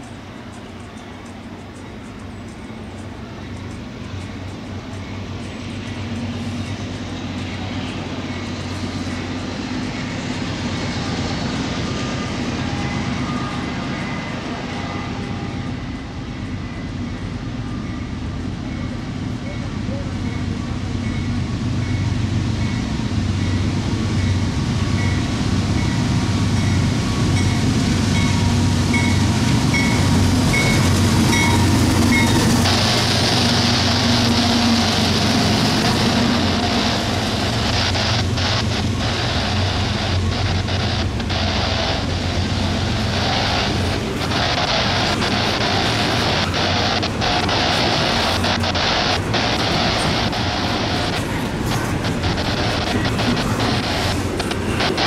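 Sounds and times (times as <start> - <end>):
diesel locomotive engine drone: 0.0 - 55.0
rumbling rail noise: 0.0 - 55.0.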